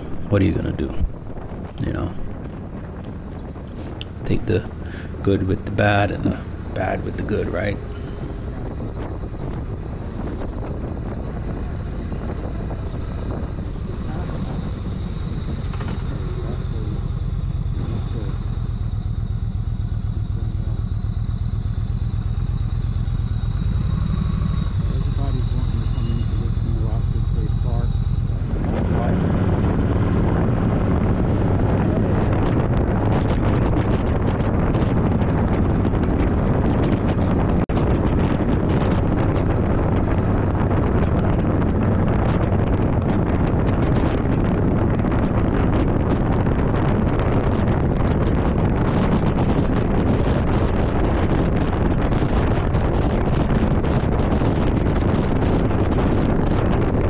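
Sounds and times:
wind noise on microphone: 0.0 - 57.0
motorcycle engine running: 1.1 - 57.0.

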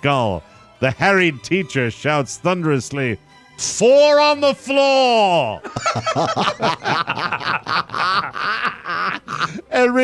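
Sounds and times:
men laughing loudly: 5.6 - 9.7.

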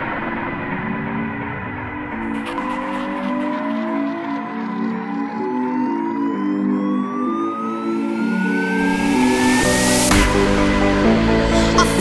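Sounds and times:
rising synth tone: 0.0 - 11.3
sustained synth chords: 0.0 - 12.0.

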